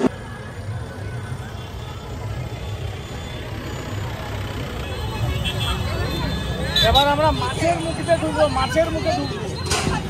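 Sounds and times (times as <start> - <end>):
low rumble of traffic: 0.0 - 10.0
murmur of crowd voices: 0.0 - 10.0.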